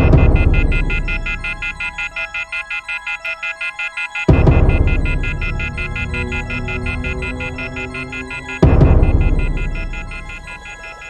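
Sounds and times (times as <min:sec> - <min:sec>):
low film score drone: 0:04.3 - 0:11.0.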